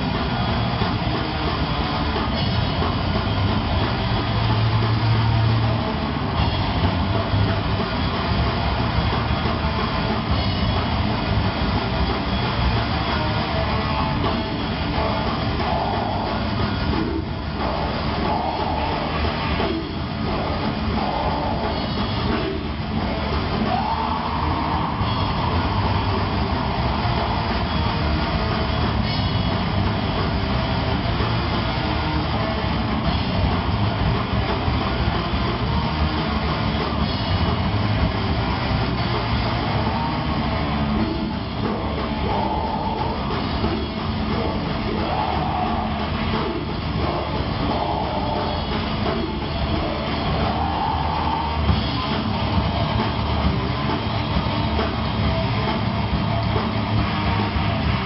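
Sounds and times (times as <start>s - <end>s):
heavy metal band playing live: 0.0s - 58.0s.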